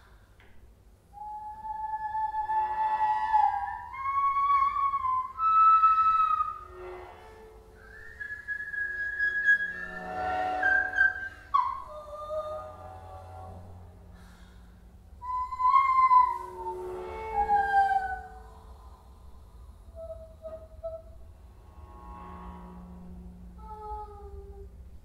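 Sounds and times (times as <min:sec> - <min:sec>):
whistle-like high tones: 0:07.8 - 0:12.2.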